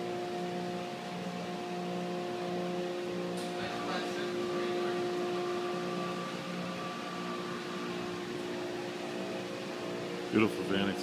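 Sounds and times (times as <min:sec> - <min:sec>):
machine hum with steady hiss: 0:00.0 - 0:11.0.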